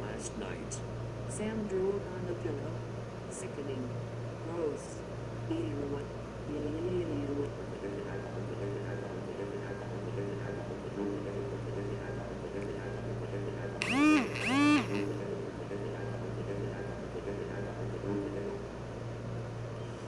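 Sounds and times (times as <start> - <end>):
steady hum: 0.0 - 20.0
loud rising and falling sounds: 13.8 - 15.1.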